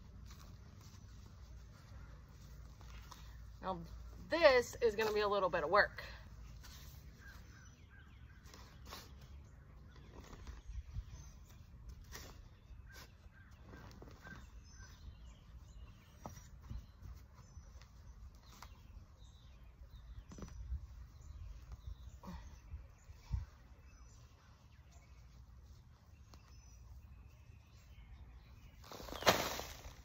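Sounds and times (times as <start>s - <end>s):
bird chirping: 6.8s - 29.4s.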